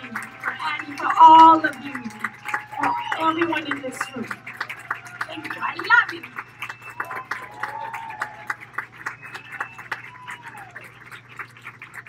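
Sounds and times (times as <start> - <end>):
voices calling out: 0.0 - 10.9
audience clapping: 0.0 - 12.0.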